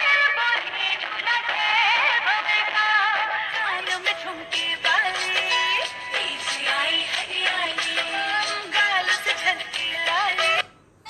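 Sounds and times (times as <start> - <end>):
film-style song: 2.9 - 10.7.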